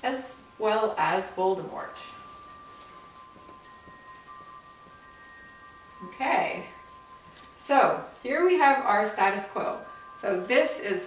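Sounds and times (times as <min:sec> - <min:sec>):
faint sustained ringing tones: 0:00.0 - 0:11.0.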